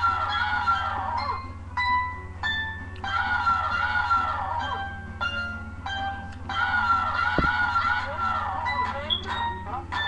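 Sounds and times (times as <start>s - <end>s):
deep bass hit: 7.4s - 7.7s.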